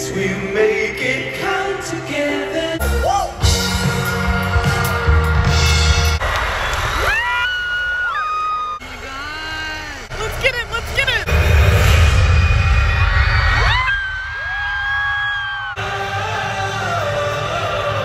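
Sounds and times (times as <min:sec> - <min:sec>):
live band playing: 0:02.8 - 0:06.2.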